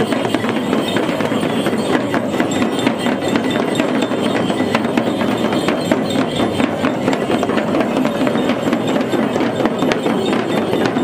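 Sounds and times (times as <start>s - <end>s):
frame drums beaten fast: 0.0s - 11.0s.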